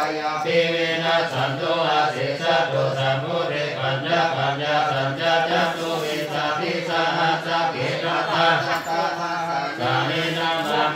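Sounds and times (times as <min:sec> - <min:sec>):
men chanting in unison: 0:00.0 - 0:10.9.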